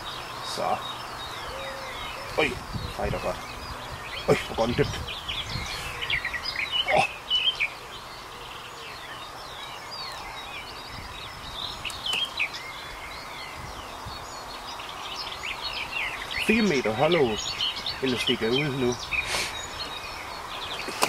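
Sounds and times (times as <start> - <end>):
birds chirping and whistling: 0.0 - 21.0
steady outdoor hiss: 0.0 - 21.0.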